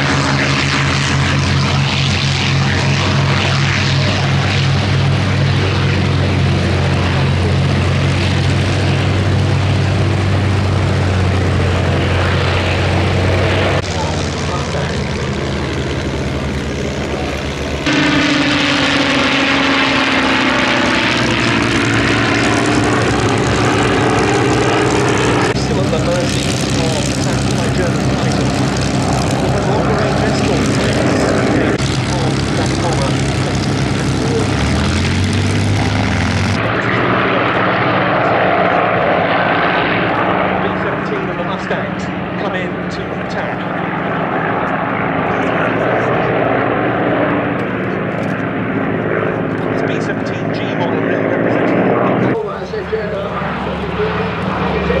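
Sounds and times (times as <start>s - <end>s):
aircraft passing with falling pitch: 0.0s - 55.0s
piston aero engines at full power: 0.0s - 55.0s.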